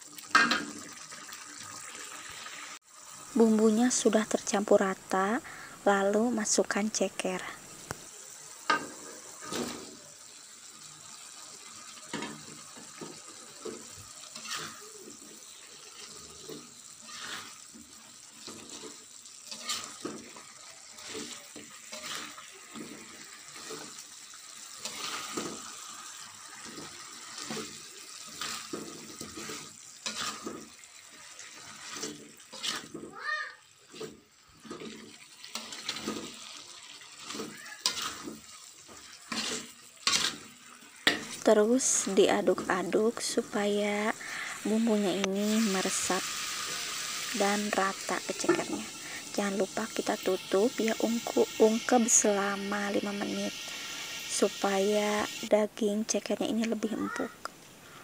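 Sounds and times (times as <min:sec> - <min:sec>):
spatula scraping a wok: 0:08.2 - 0:10.0, 0:11.2 - 0:33.1, 0:33.8 - 0:43.3, 0:44.1 - 0:55.5.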